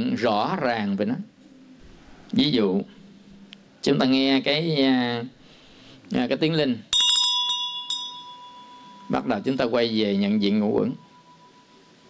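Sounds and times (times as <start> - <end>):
handbell clapper striking: 6.9 - 9.3
bell ringing tone: 6.9 - 12.0.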